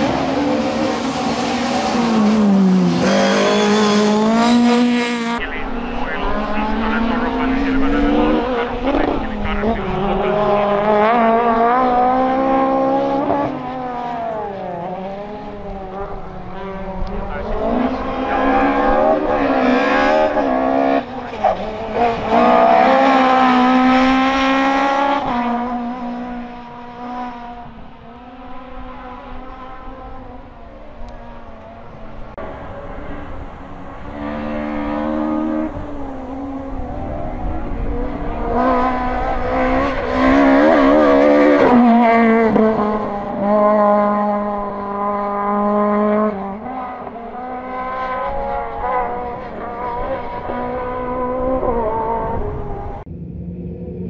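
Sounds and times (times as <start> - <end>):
rally car engine revving: 0.0 - 54.0.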